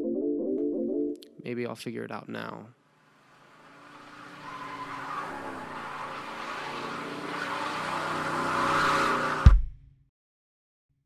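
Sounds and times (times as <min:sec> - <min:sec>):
car engine: 0:02.8 - 0:09.5
tyres skidding: 0:02.8 - 0:09.5.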